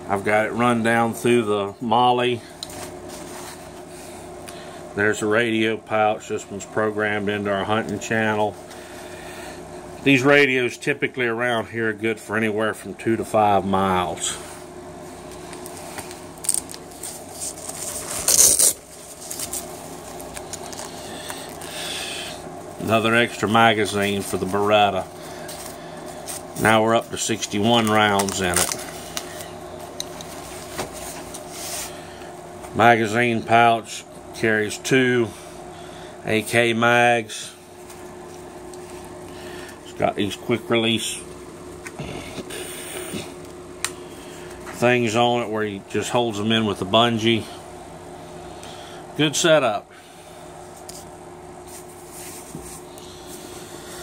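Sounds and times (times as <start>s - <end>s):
nylon rustling: 15.3s - 21.8s.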